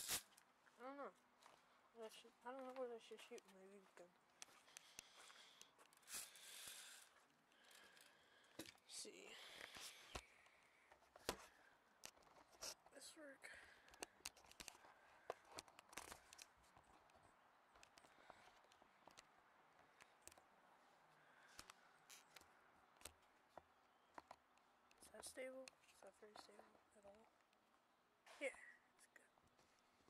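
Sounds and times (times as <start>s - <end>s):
rustling and scraping on microphone: 11.0s - 13.1s.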